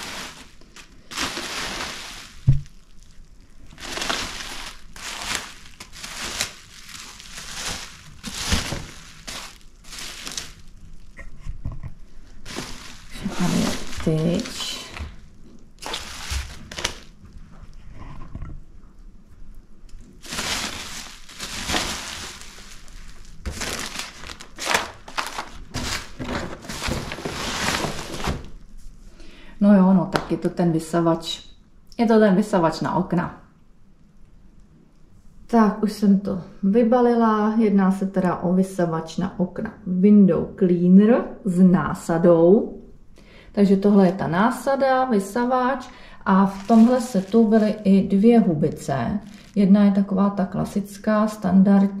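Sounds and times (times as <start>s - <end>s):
bubble wrap crinkling: 0.0s - 11.4s, 12.1s - 17.8s, 19.9s - 28.9s, 43.8s - 50.1s.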